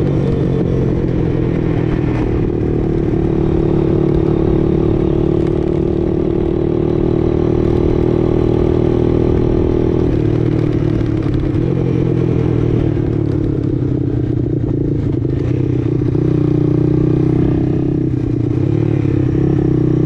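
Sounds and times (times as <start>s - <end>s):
atv engine running: 0.0s - 20.0s.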